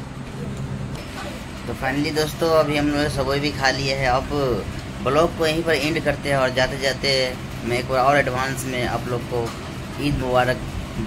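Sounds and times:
low mechanical hum: 0.0s - 11.0s
man's voice: 1.7s - 10.6s.

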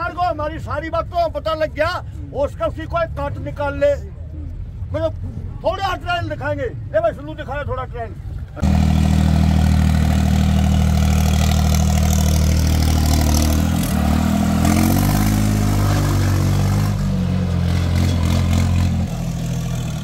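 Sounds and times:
tractor diesel engine running: 8.6s - 20.0s.

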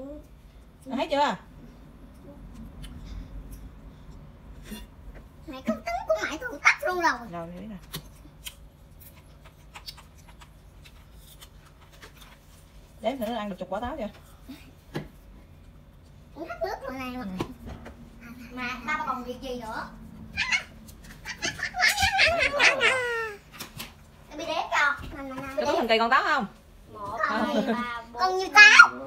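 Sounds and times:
low room hum: 0.0s - 29.0s.

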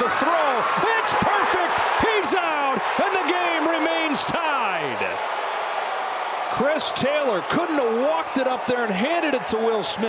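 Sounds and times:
sports commentator speaking: 0.0s - 5.2s, 6.5s - 10.0s
stadium crowd noise: 0.0s - 10.0s.

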